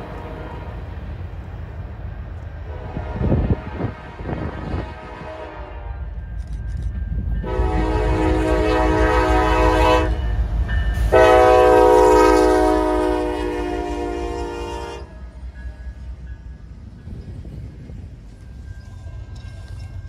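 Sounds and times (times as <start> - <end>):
locomotive air horn blasts: 0.0 - 0.8, 2.7 - 6.1, 7.4 - 10.3, 11.1 - 15.3
train engines and wheels rumbling: 0.0 - 20.0.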